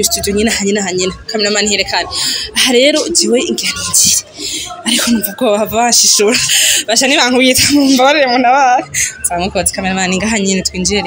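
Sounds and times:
woman talking animatedly: 0.0s - 11.0s.

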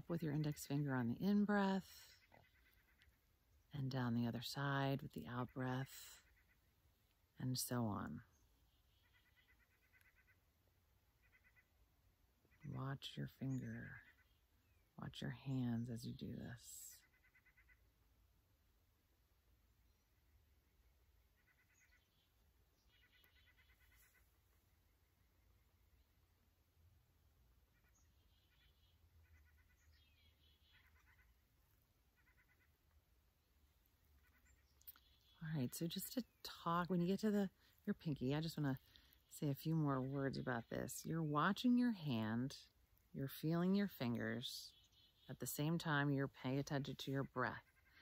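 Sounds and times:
distant animal calls: 1.9s - 3.3s, 8.8s - 10.5s, 11.1s - 11.8s, 17.0s - 18.0s, 21.3s - 22.3s, 22.9s - 25.5s, 27.6s - 32.9s, 34.1s - 35.4s, 47.5s - 48.0s.

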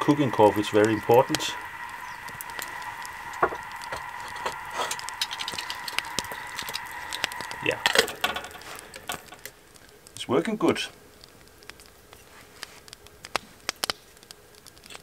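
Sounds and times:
faint high whine: 0.0s - 11.1s
wood fire crackling and popping: 0.0s - 15.0s.

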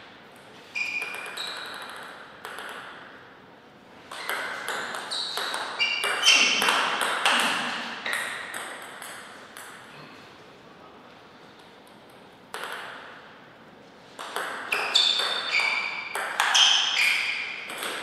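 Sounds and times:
table tennis ball hits: 0.4s - 3.2s, 4.1s - 9.9s, 11.6s - 13.2s, 14.2s - 18.0s.

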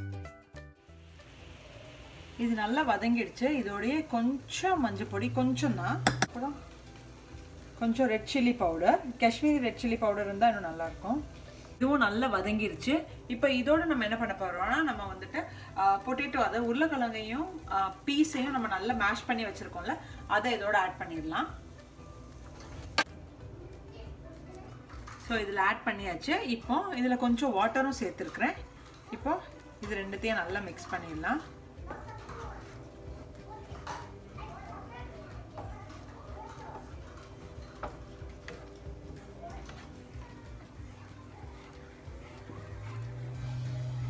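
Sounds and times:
faint sizzle of frying in a pan: 0.8s - 44.0s
spatula tapping pan: 6.0s - 6.4s.

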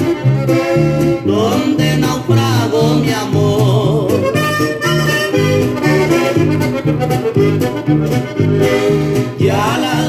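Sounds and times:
accordion: 0.0s - 10.0s
bass and guitar rhythm: 0.0s - 10.0s
person singing: 1.2s - 4.8s, 9.2s - 10.0s.

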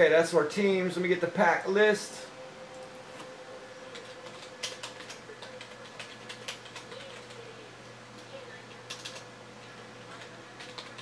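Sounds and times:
computer keyboard typing: 3.9s - 7.5s, 8.2s - 11.0s.

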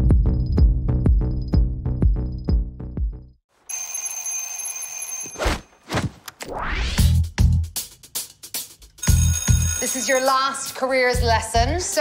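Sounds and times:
electric alarm bell ringing: 3.7s - 5.4s, 9.0s - 10.8s
drum machine beat: 7.0s - 9.3s.

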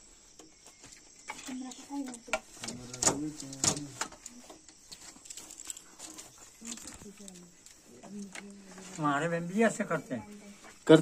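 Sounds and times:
wooden handloom clicks and knocks: 1.3s - 4.3s.

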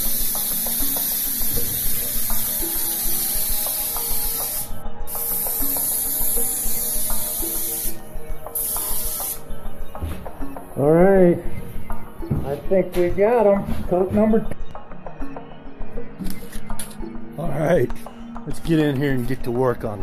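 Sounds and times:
spray gun hissing: 0.0s - 8.0s, 8.6s - 9.4s.

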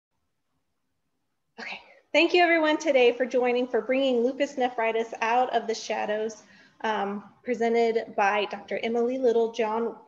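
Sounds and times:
woman's voice: 1.6s - 10.0s.

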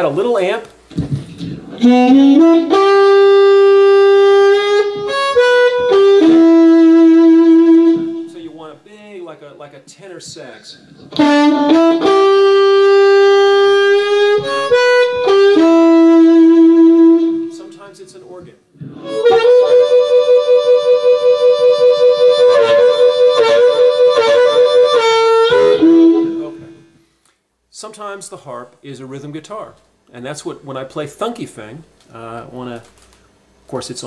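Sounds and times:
blues harmonica long notes: 1.1s - 8.6s, 11.0s - 17.8s, 18.8s - 27.1s.

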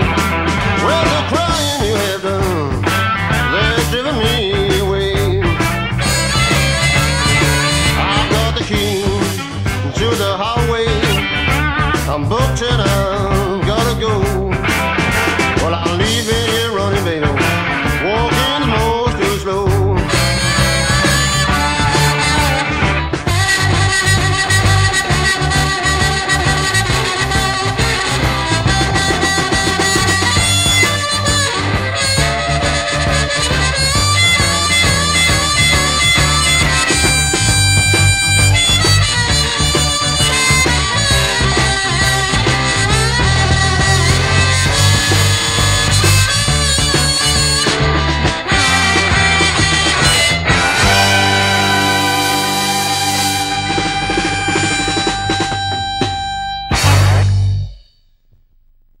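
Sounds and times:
blues harmonica: 0.0s - 57.8s
electric blues band: 0.0s - 57.8s
bass line: 0.0s - 59.0s
drums: 0.0s - 59.0s.

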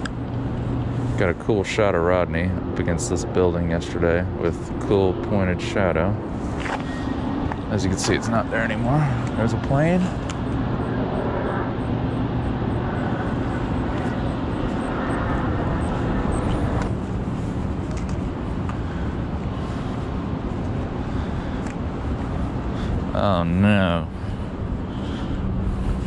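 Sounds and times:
airplane flying overhead: 0.0s - 26.0s.

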